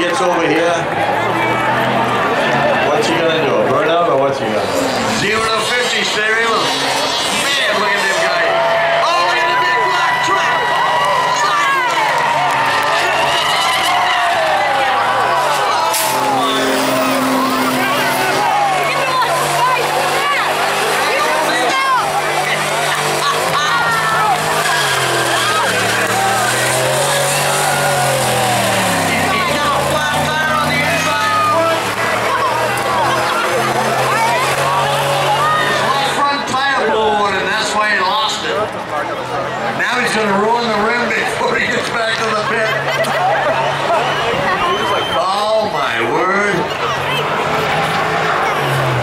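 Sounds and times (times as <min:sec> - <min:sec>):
truck engine revving: 0:00.0 - 0:49.0
tyres squealing: 0:04.3 - 0:36.2.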